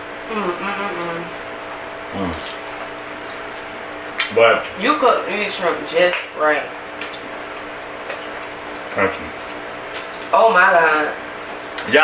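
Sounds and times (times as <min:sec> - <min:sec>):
steady low hum: 0:00.0 - 0:12.0
person chewing: 0:02.2 - 0:04.8.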